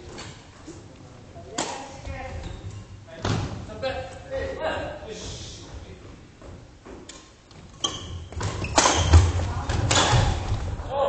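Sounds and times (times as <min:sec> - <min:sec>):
rackets hitting shuttlecock: 0:01.5 - 0:01.9, 0:08.3 - 0:10.6.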